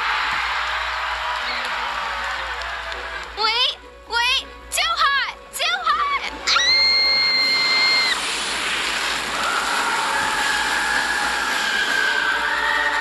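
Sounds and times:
girl screaming: 6.5 - 8.2.

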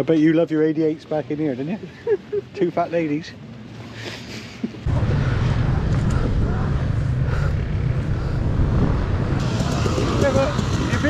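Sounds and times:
motorcycle engines idling: 6.3 - 11.0.

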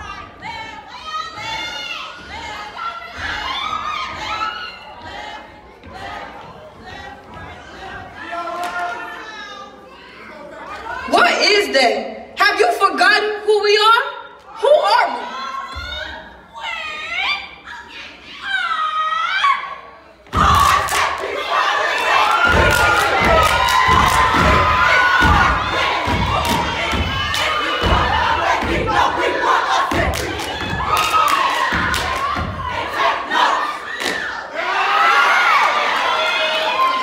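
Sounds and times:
group shouting a chant: 14.9 - 37.0
stomps and claps: 20.3 - 21.4, 22.0 - 33.1, 33.9 - 34.4
audience cheering and screaming: 21.6 - 28.4.

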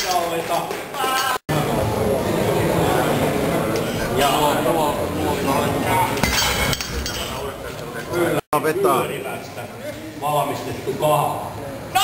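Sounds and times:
metal weight plates clinking: 6.2 - 7.5.

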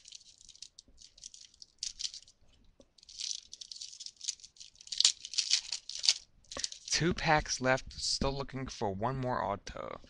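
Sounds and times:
foil wrapper crinkling: 0.0 - 2.4, 3.0 - 7.0.

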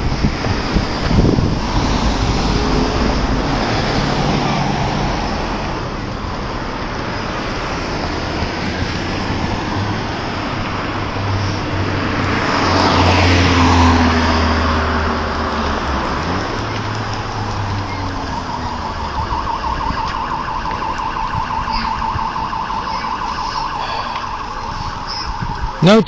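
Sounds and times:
cars driving past: 0.0 - 26.0.

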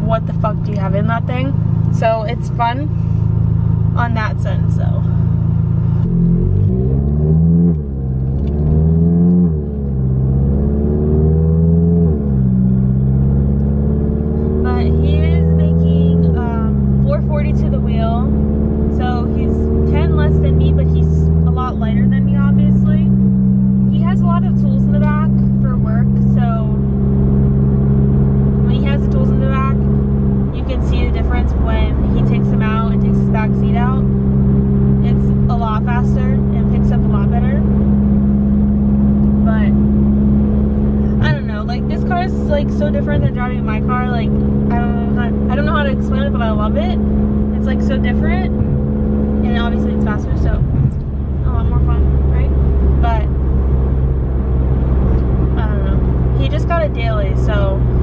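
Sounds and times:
car engine accelerating through gears: 0.0 - 58.0.

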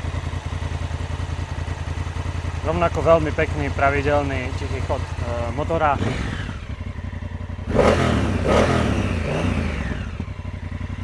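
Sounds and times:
motorcycle engine idling and revving: 0.0 - 11.0.

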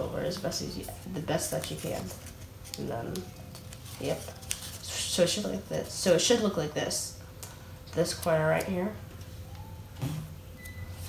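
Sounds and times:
paper rustling being folded: 0.2 - 5.6.

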